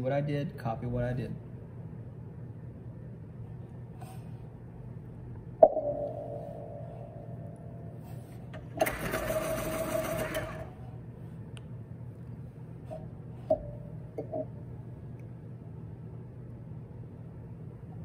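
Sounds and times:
low hum: 1.4s - 8.8s.

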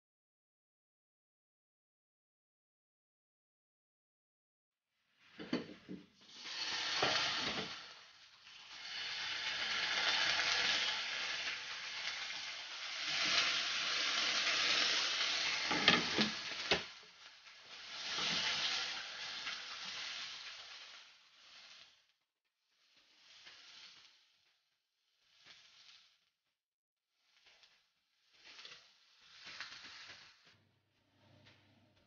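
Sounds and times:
slices sizzling in hot oil: 5.1s - 30.6s.

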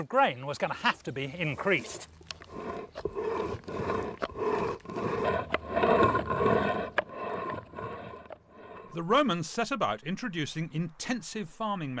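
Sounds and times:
stone grinding grain on quern: 1.2s - 9.0s.

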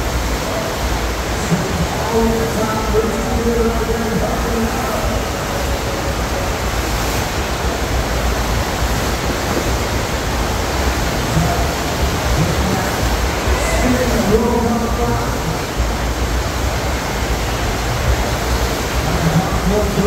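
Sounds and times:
water rushing from jets: 0.0s - 20.0s.

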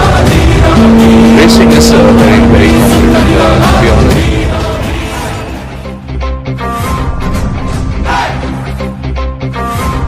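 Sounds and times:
race car engine: 0.0s - 6.0s
music: 0.0s - 10.0s
steady held tone: 0.6s - 4.4s.

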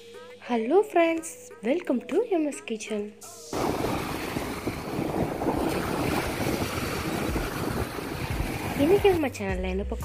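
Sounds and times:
sea waves on a sandy beach: 3.6s - 9.2s
wind buffeting microphone: 3.6s - 9.3s.

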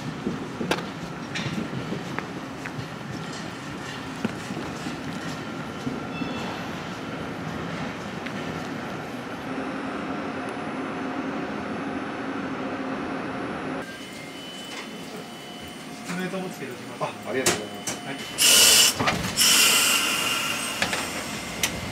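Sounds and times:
streetcar humming: 0.0s - 21.9s.

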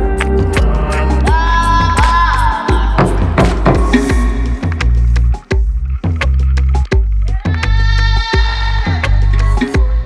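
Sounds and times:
electronic dance beat: 0.0s - 6.2s
sharp percussion hits: 0.6s - 6.2s.

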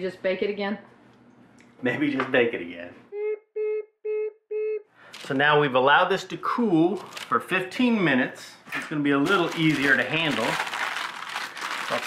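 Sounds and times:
short low beeps: 3.2s - 4.9s.

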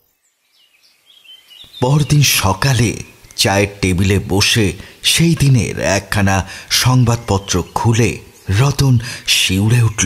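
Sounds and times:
faint bird chirps: 0.0s - 10.0s
man narrating: 1.7s - 10.0s.

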